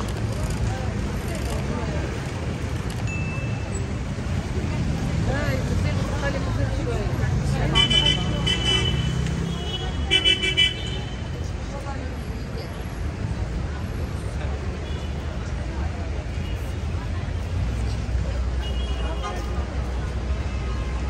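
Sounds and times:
passers-by talking: 0.0s - 21.0s
traffic rumble: 0.0s - 21.0s.

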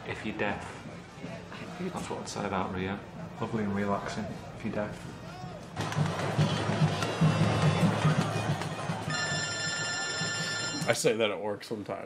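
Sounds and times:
noisy street crowd: 0.0s - 11.0s
music with pulsing drum beat: 5.8s - 9.4s
high ringing tone: 9.1s - 11.0s.

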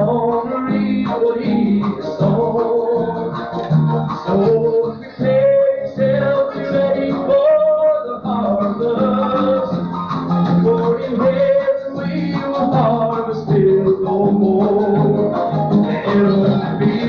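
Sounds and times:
acoustic guitar: 0.0s - 17.0s
person singing: 0.0s - 17.0s.

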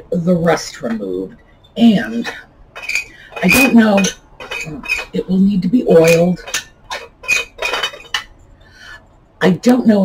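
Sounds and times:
bulb base scraping in socket: 2.8s - 5.2s, 6.0s - 8.3s.

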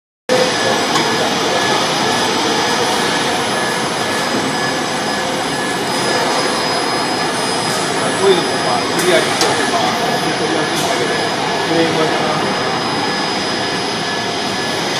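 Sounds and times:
faint steady tones: 0.3s - 14.9s
warehouse machinery whirring: 0.3s - 14.9s.

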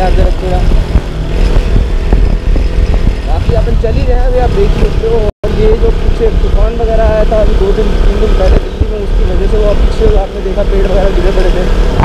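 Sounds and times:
motorcycle engine running: 0.0s - 12.0s
wind buffeting microphone: 0.0s - 12.0s.

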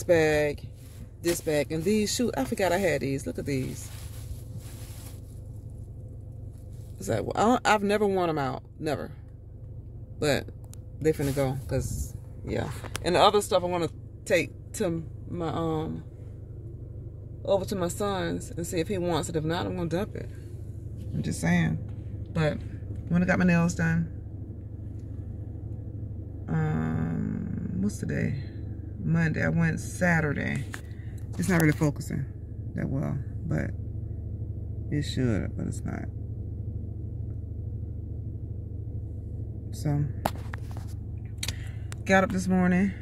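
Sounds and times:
low hum in car cabin: 0.0s - 43.0s.

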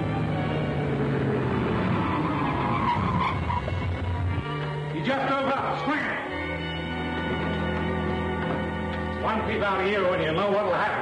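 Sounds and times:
car driving up: 0.0s - 10.6s
background music: 0.0s - 11.0s
tyres skidding: 0.0s - 11.0s.

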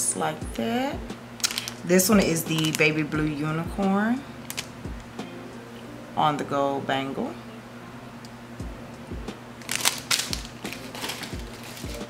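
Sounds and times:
plastic bag crinkling: 1.4s - 3.0s, 4.5s - 4.7s, 9.6s - 12.0s.

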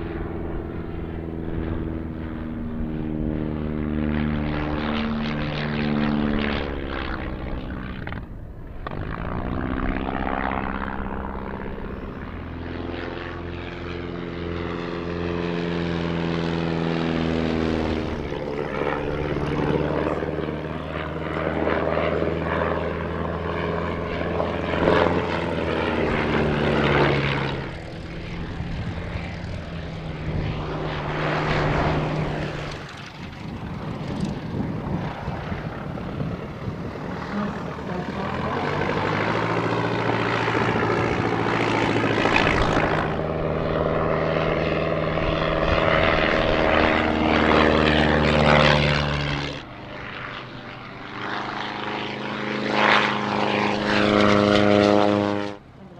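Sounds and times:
propeller aircraft flying past: 0.0s - 55.9s.

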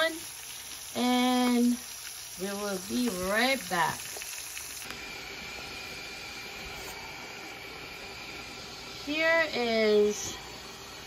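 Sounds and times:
sausages frying in a pan: 0.0s - 11.0s.

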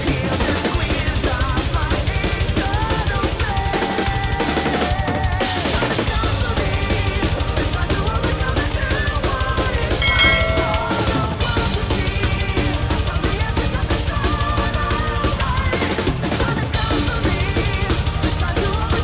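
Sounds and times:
recorded metal band track: 0.0s - 19.0s
fast metal drumming: 5.9s - 19.0s
lead guitar melody: 10.0s - 11.8s.

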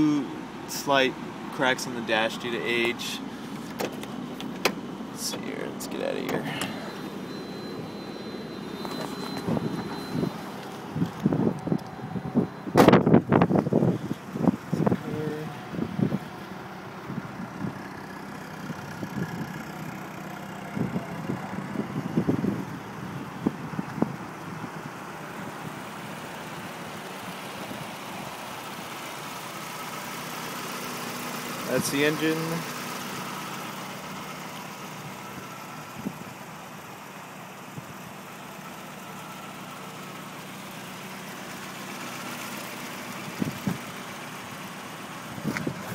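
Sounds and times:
car engine idling: 0.0s - 45.9s.

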